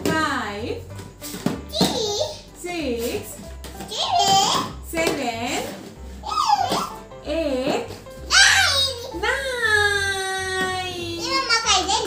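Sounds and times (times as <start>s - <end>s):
child's gliding vocal sounds: 6.2s - 6.9s.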